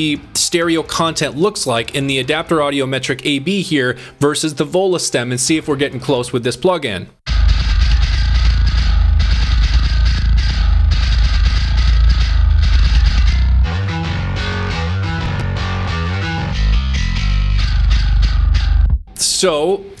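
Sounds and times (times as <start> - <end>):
metal bass guitar riff: 7.3 - 19.3.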